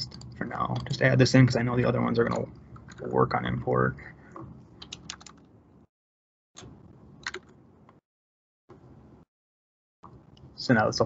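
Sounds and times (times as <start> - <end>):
typing on computer keyboard: 4.8 - 5.5, 7.2 - 7.5.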